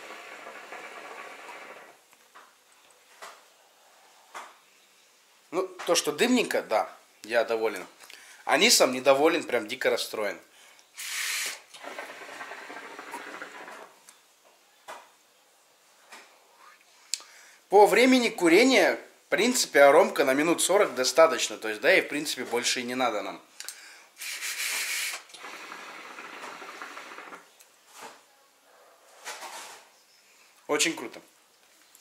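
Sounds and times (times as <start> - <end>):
hookah bubbling hiss: 0.0 - 2.0, 10.9 - 14.0, 24.2 - 27.5
short breath: 8.0 - 8.5, 17.0 - 17.7, 23.6 - 25.2.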